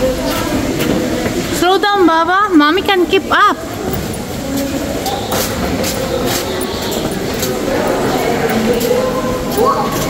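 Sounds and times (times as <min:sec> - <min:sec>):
murmur of voices: 0:00.0 - 0:10.0
footsteps on stairs: 0:03.8 - 0:10.0.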